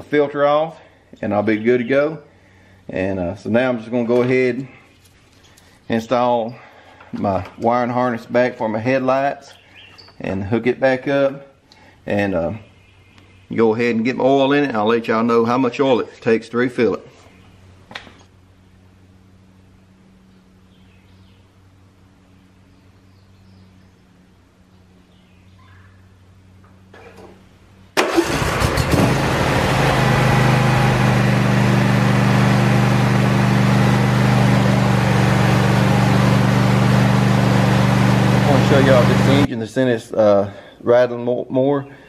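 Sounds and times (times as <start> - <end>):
lawn tractor engine running: 28.0 - 39.5.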